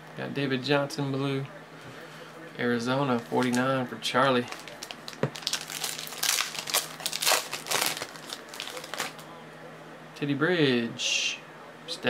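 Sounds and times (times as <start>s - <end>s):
foil wrapper crinkling: 3.2s - 3.7s, 4.3s - 9.3s.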